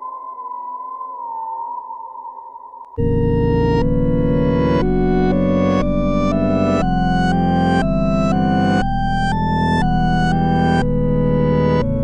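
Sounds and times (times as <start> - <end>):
electronic drone music: 3.0 - 12.0.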